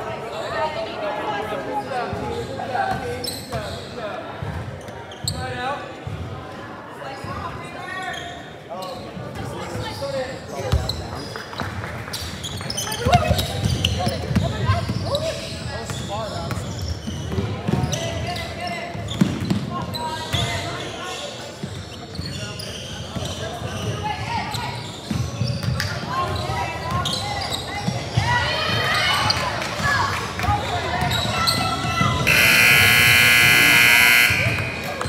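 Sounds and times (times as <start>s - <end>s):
players shouting: 31.6s - 35.0s
scoreboard horn: 32.3s - 35.0s.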